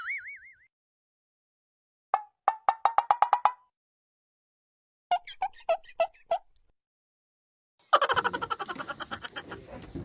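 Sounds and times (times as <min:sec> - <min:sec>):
cartoon wood-block knocks: 0:02.2 - 0:03.7.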